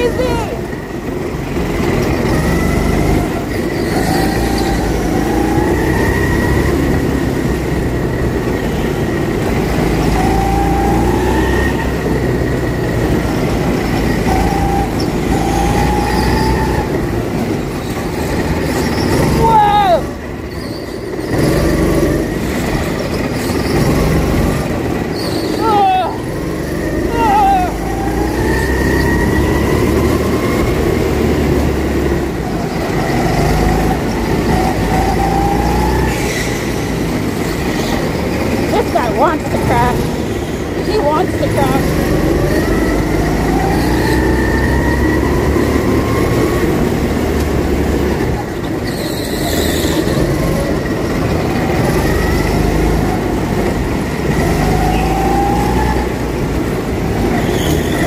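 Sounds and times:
go-kart engine accelerating: 0.0 - 58.0
high-pitched squeals: 2.0 - 7.2, 13.5 - 46.9.

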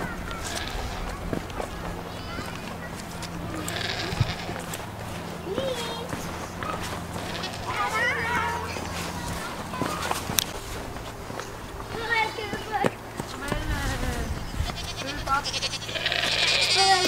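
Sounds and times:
goats bleating: 0.0 - 10.2, 14.4 - 17.0.

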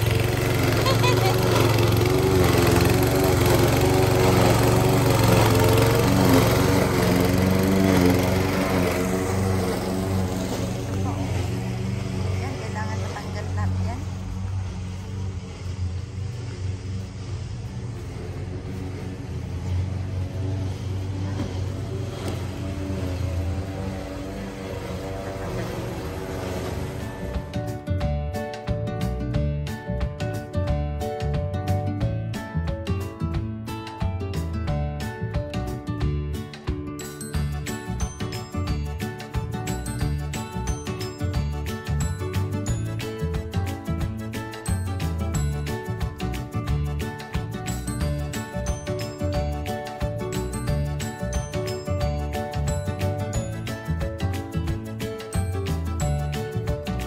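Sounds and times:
lawn mower engine cutting grass: 0.0 - 57.0.

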